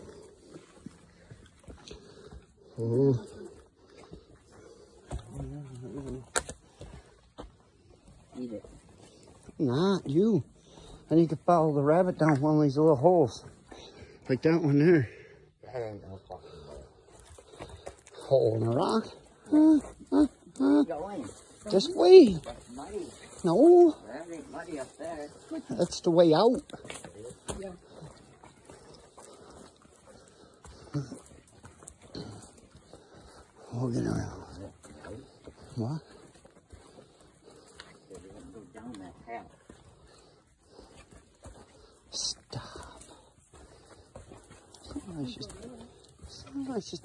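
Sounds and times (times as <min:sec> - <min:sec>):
footsteps on dirt and leaves: 0:00.0 - 0:14.4, 0:16.4 - 0:47.0.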